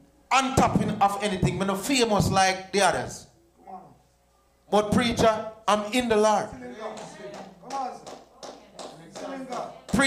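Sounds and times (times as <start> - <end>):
people talking: 4.7 - 10.0.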